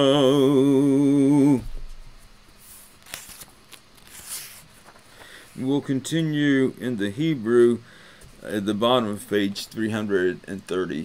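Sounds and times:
man chanting a prayer: 0:00.0 - 0:01.7.

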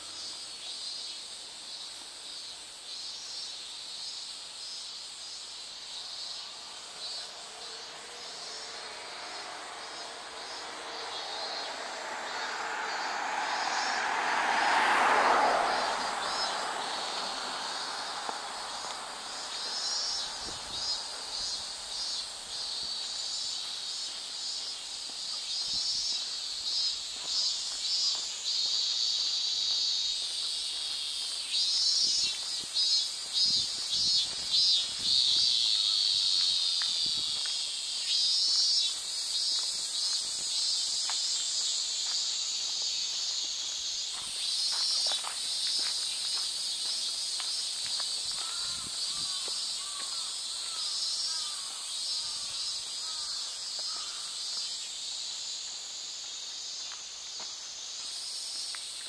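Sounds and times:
cicadas buzzing: 0:00.0 - 0:59.0
vehicle passing: 0:06.8 - 0:23.1.

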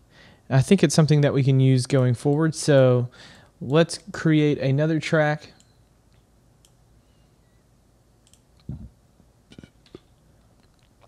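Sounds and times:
computer mouse clicks: 0:08.2 - 0:08.8.

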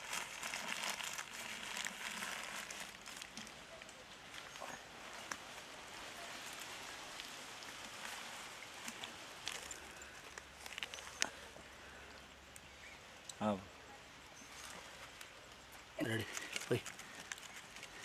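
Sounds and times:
newspaper crinkling and rustling: 0:00.0 - 0:11.4, 0:16.0 - 0:18.0.

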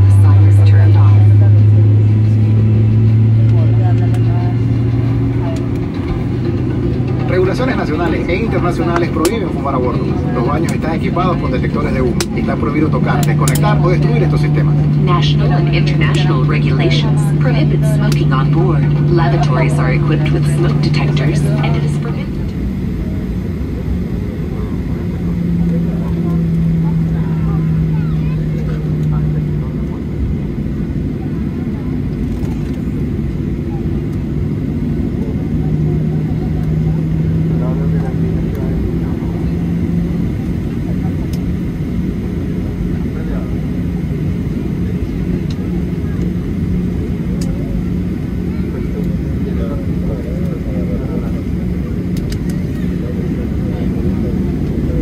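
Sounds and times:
airliner rolling rumble: 0:00.0 - 0:55.0
jet engines humming: 0:00.0 - 0:55.0.

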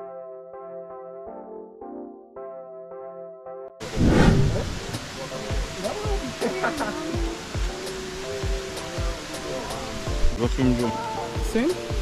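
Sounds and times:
short low thumps: 0:03.8 - 0:05.7
waterfall rushing: 0:03.8 - 0:12.0
people's voices: 0:05.0 - 0:07.4.

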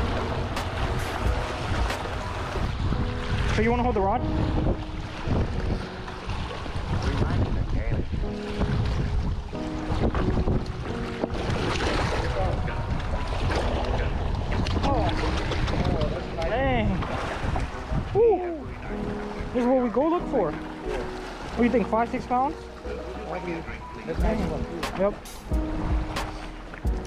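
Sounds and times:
waves washing against rocks: 0:00.0 - 0:22.5
wind buffeting microphone: 0:00.0 - 0:22.6, 0:23.7 - 0:27.0.

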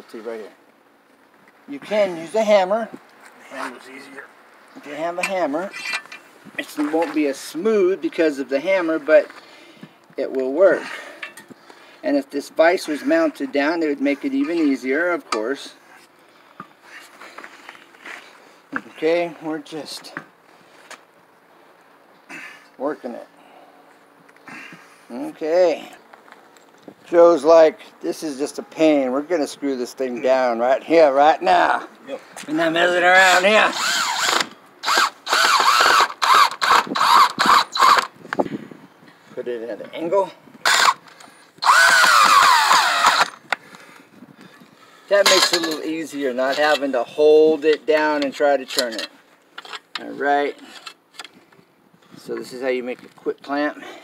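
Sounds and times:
cordless drill driving a screw: 0:33.7 - 0:38.1, 0:40.6 - 0:41.0, 0:41.6 - 0:43.4.

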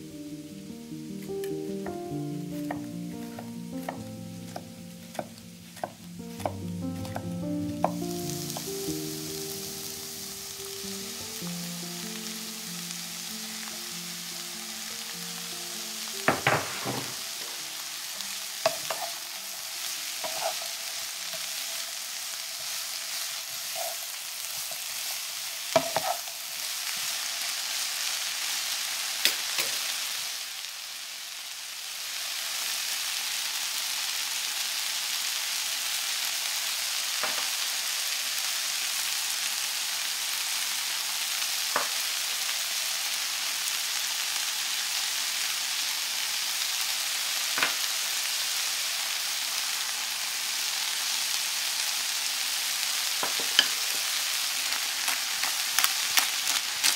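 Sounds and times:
vegetables sizzling in a frying pan: 0:00.0 - 0:56.9
wooden spatula knocking pan: 0:02.7 - 0:07.2, 0:16.3 - 0:17.6.

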